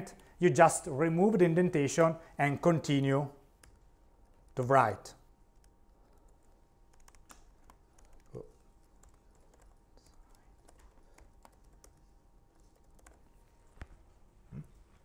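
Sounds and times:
computer keyboard typing: 3.6s - 4.6s, 5.4s - 13.6s.

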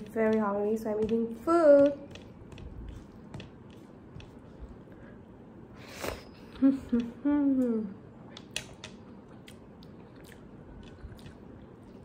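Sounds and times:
chewing and eating mouth sounds: 8.3s - 12.0s.

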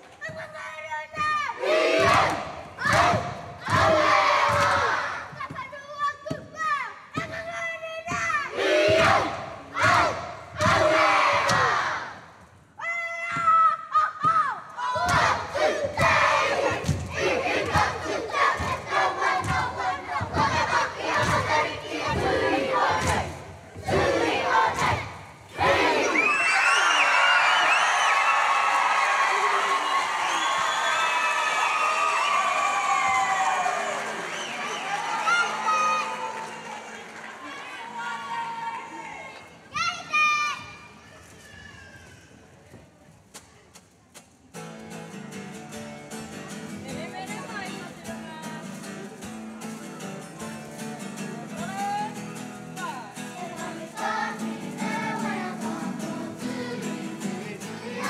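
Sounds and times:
children chanting in unison: 1.4s - 5.4s, 8.3s - 12.2s, 14.8s - 26.4s, 53.4s - 58.0s
slaps and stamps: 2.0s - 5.0s, 8.9s - 11.8s, 15.0s - 25.1s.

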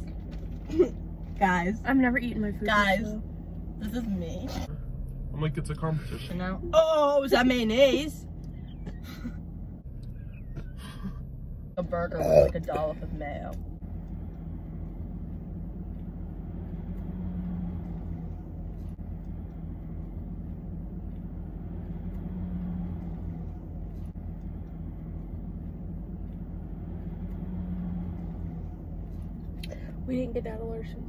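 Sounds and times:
car idling hum: 0.0s - 31.0s.

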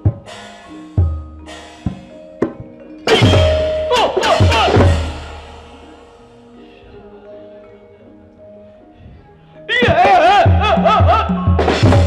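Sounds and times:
gamelan ensemble playing: 0.0s - 12.0s.

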